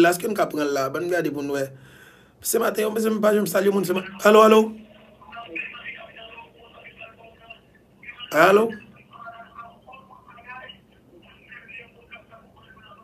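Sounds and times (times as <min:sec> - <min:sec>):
voice over phone line: 0:03.6 - 0:13.0.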